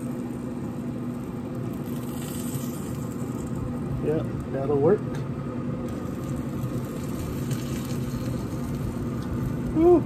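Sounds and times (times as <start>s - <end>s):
grill fan humming: 0.0s - 10.0s.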